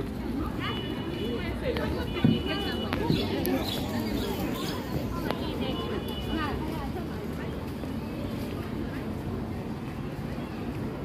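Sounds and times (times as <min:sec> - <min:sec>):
low urban rumble: 0:00.0 - 0:11.0
passers-by voices: 0:00.0 - 0:11.0.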